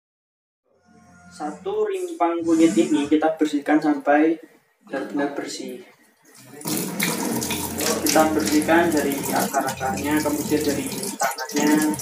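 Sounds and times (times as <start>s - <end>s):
water running onto hands: 6.3s - 12.0s
kitchen tap turned on: 6.4s - 12.0s.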